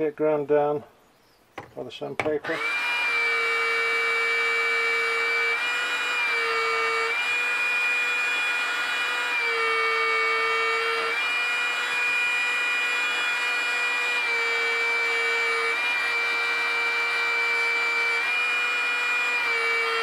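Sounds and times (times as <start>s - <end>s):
chisel grinding on sander belt: 2.2s - 20.0s
belt sander motor whine: 2.4s - 20.0s.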